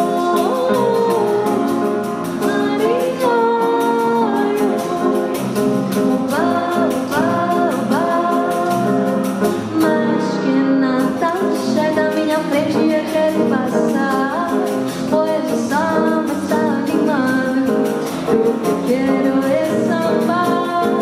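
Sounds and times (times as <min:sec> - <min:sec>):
acoustic guitar: 0:00.0 - 0:21.0
person singing into a microphone: 0:00.0 - 0:21.0.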